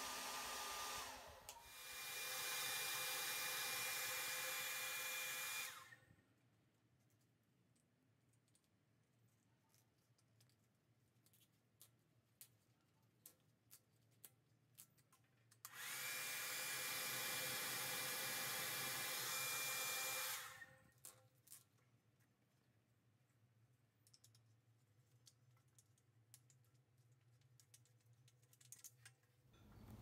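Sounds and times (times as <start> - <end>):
hair dryer blowing: 0.0 - 6.0, 15.7 - 20.7.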